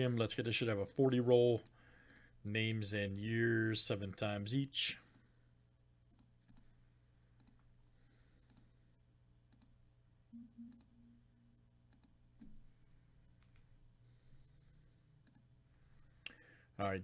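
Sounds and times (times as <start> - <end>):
low electrical hum: 0.0 - 17.0
computer mouse clicks: 6.1 - 6.7, 7.3 - 7.7, 8.4 - 8.7, 9.5 - 9.8, 11.9 - 12.6, 15.2 - 16.1.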